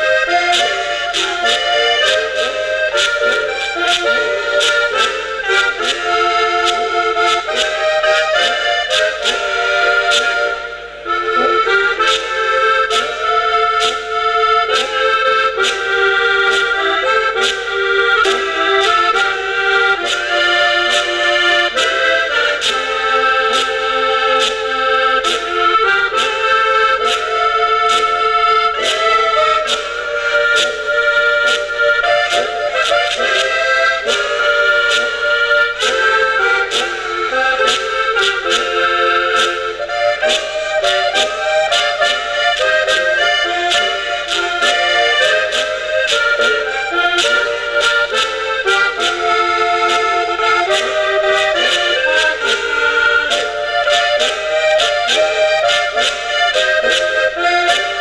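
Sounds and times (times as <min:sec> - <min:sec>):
button accordion: 0:00.0 - 0:58.0
folk horns playing: 0:00.0 - 0:58.0.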